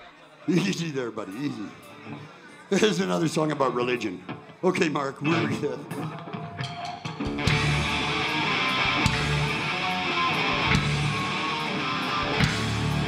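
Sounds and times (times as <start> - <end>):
punk rock band playing: 6.0 - 13.0.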